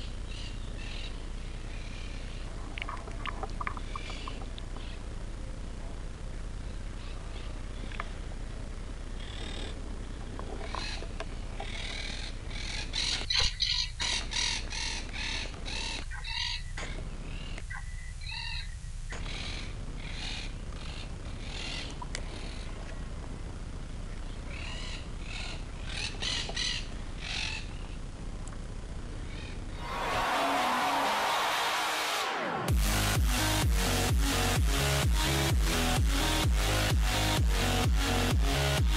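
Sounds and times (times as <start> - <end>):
birds calling: 3.6 - 5.1, 9.2 - 23.1, 24.1 - 28.0.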